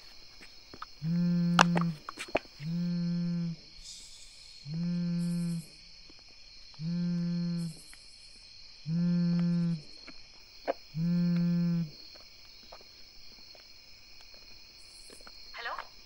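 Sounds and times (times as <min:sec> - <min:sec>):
crickets chirring: 0:00.0 - 0:16.0
low buzzing tone: 0:01.0 - 0:02.0, 0:02.6 - 0:04.0, 0:04.6 - 0:05.8, 0:06.8 - 0:08.0, 0:08.8 - 0:10.0, 0:10.9 - 0:12.0.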